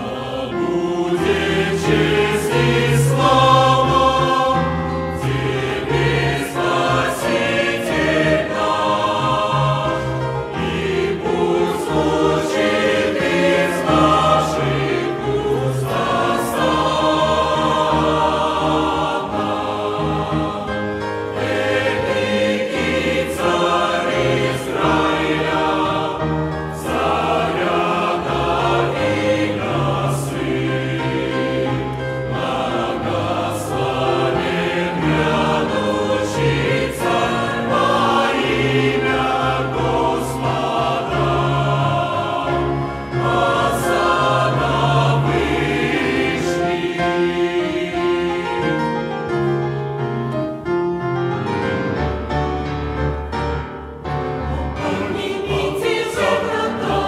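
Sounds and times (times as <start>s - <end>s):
mixed choir singing a hymn: 0.0s - 49.8s, 51.4s - 57.0s.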